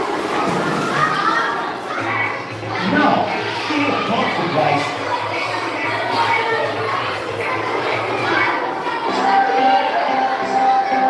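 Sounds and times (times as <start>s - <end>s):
children chattering in echoing hall: 0.0s - 11.0s.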